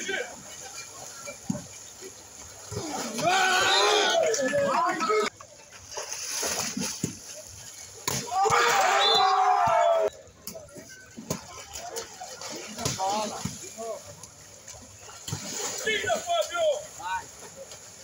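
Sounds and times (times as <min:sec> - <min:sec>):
pool water splashing: 0:00.0 - 0:18.0
sharp slaps on water: 0:08.0 - 0:08.8, 0:12.5 - 0:14.3.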